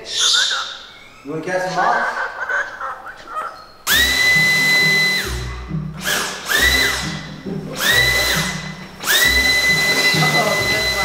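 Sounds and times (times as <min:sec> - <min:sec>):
background music: 0:01.6 - 0:11.0
stick vacuum motor whining: 0:03.8 - 0:11.0.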